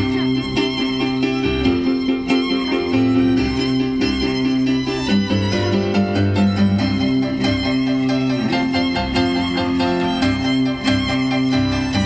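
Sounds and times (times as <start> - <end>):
keyboard accompaniment: 0.0 - 12.0
violin melody: 0.0 - 12.0.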